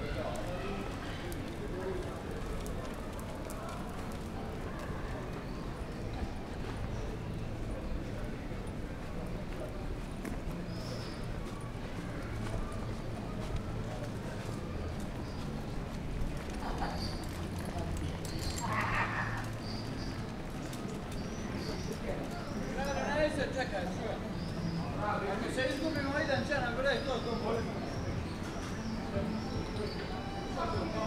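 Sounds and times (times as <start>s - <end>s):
chatter of passers-by: 0.0s - 31.0s.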